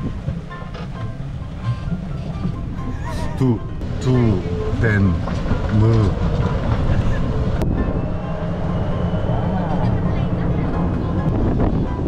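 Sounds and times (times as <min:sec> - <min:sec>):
wind on microphone: 0:00.0 - 0:12.0
person speaking: 0:03.1 - 0:06.2
cart rolling on pavement: 0:03.8 - 0:12.0.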